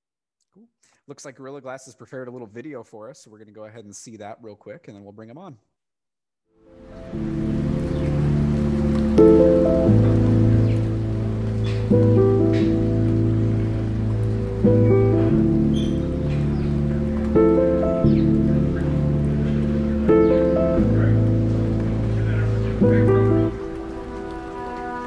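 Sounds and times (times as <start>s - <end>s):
background music with chords: 6.7s - 25.0s.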